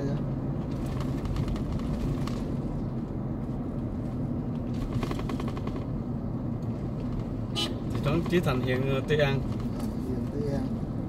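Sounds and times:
car engine and road noise: 0.0 - 11.0
rapid clicking or rattling: 0.7 - 2.5, 4.6 - 6.1.

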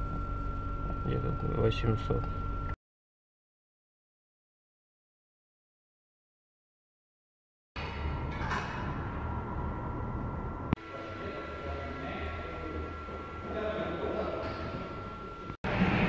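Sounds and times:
low mechanical hum: 0.0 - 2.8, 7.8 - 16.0.

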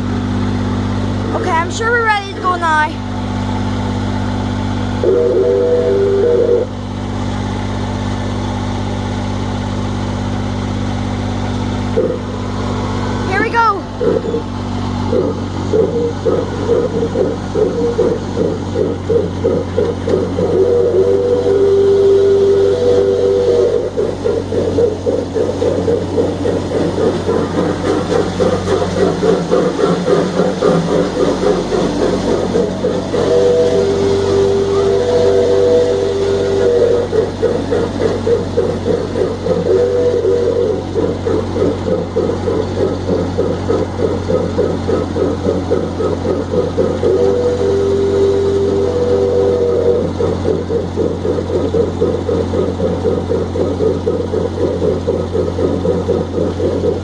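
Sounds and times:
miniature train engine hum: 0.0 - 57.0
train rattling on track: 13.2 - 57.0.

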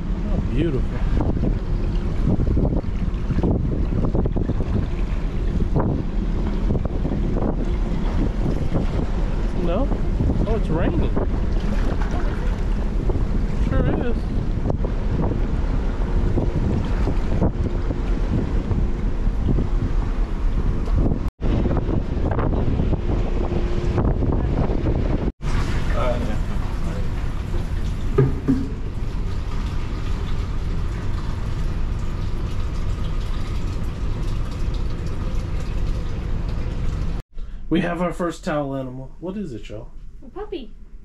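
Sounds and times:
wind buffeting microphone: 0.0 - 37.2.

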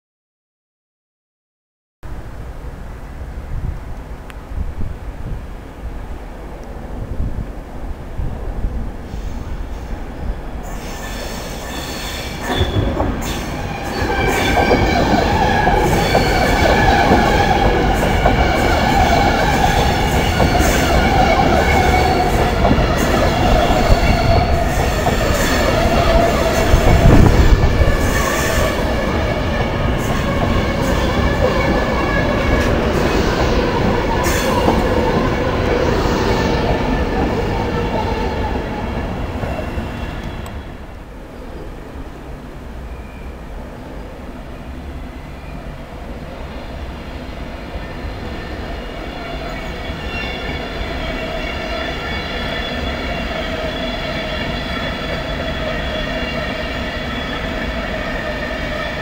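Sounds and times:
electric train rumbling past: 2.1 - 59.0
wheels squealing on track: 10.6 - 29.2, 47.8 - 59.0.

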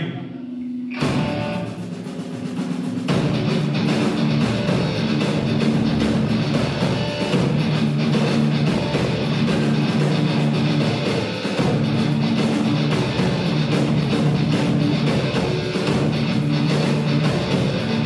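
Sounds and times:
rock band playing live: 0.9 - 18.0.

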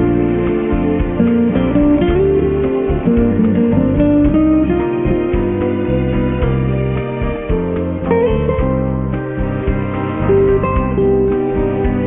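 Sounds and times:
plucked guitar: 0.0 - 12.0.

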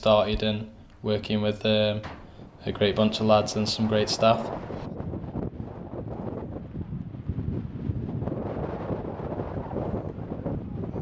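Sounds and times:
wind blowing on microphone: 2.0 - 11.0.

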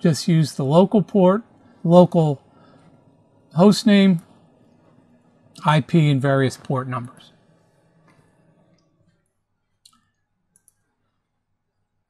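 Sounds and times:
computer mouse clicks: 9.8 - 10.8.

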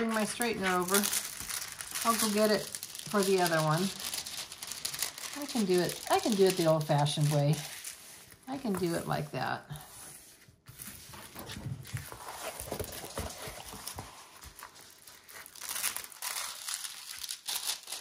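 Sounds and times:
plastic film crinkling: 0.0 - 9.4, 10.8 - 18.0.

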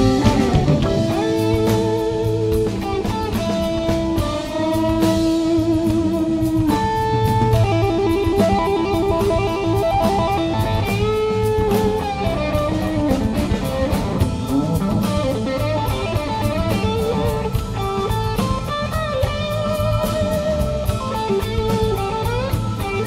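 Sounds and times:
bass and drums: 0.0 - 23.0
electric guitar bent notes: 0.0 - 23.0.

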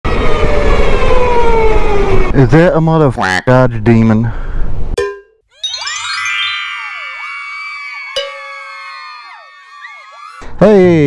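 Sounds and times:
low wind rumble: 0.1 - 5.0.

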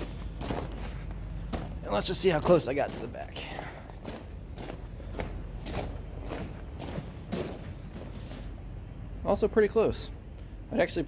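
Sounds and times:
footsteps crunching on gravel: 0.0 - 8.6.

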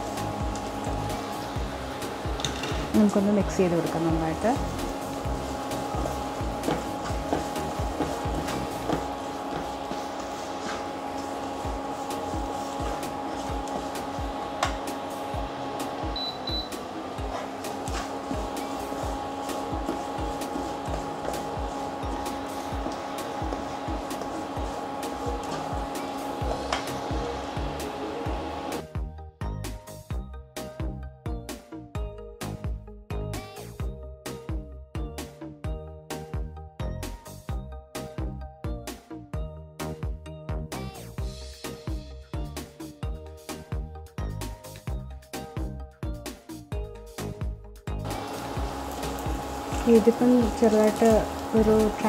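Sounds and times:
steady hum: 0.0 - 28.8, 48.0 - 52.0
vegetables sizzling in hot oil: 0.0 - 28.8, 48.1 - 52.0.

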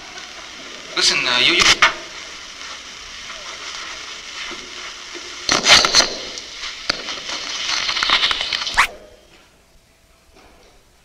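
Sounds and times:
transmitter hiss and crackle: 0.0 - 11.0
rustling handling noise on microphone: 1.6 - 9.6.

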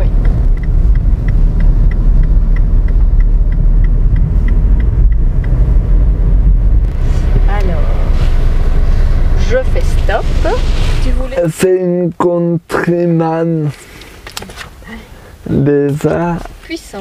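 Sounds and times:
turn signal ticking: 0.0 - 12.3
engine and road rumble: 0.0 - 17.0.

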